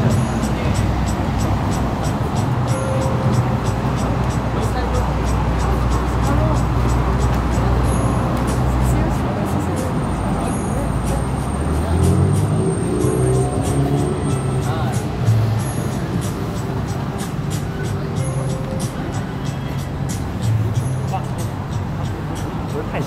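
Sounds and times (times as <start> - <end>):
background music: 0.0 - 23.0
traffic passing: 0.0 - 23.0
voices of passers-by: 0.0 - 23.0.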